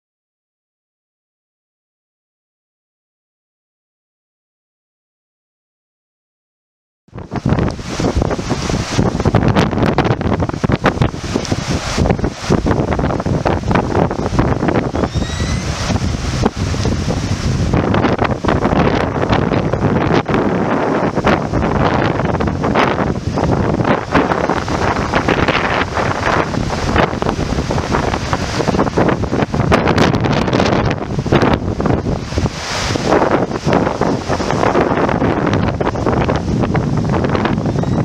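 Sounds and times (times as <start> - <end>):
wind buffeting microphone: 7.1 - 38.0
river rushing over rapids: 7.2 - 38.0.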